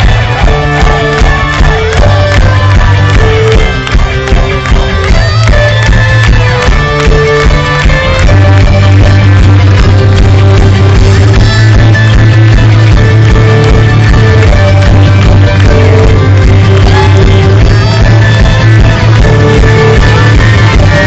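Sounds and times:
bass line: 0:00.0 - 0:21.0
drum beat: 0:00.0 - 0:21.0
guitars: 0:00.0 - 0:21.0
live folk-rock band: 0:00.0 - 0:21.0.

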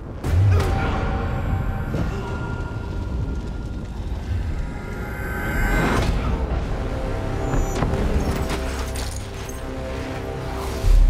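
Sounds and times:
dramatic film score: 0:00.0 - 0:11.0.

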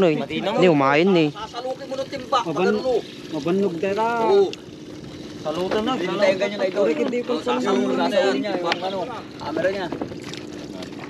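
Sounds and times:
water: 0:00.0 - 0:11.0.

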